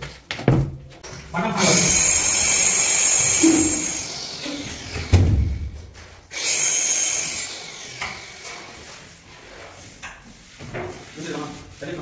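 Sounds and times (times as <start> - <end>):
power tool running: 1.6 - 8.8.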